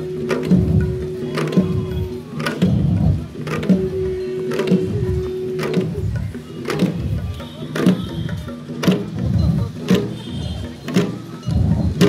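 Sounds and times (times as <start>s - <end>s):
long drums beaten in rhythm: 0.0s - 12.0s
sharp drum stroke: 0.0s - 12.0s.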